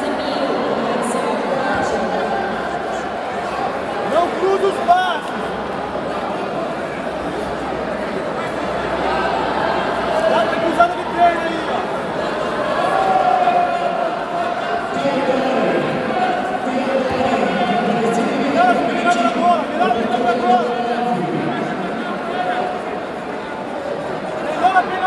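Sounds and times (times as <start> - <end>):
crowd talking and shouting: 0.0 - 25.0.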